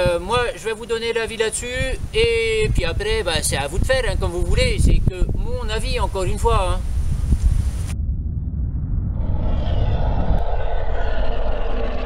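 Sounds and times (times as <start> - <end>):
deep rumble: 6.8 - 12.0
hissing whooshing swell: 8.6 - 12.0.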